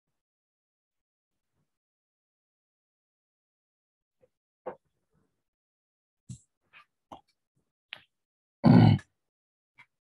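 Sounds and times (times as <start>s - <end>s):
man grunting: 8.6s - 9.0s.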